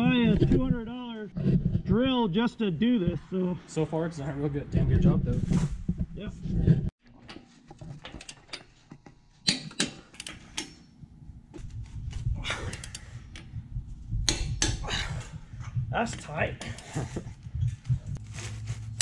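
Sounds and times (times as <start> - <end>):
low rumble: 11.2 - 16.0.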